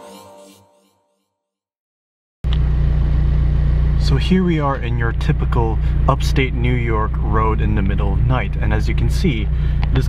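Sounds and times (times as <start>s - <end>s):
car engine drone from inside cabin: 2.5s - 10.0s.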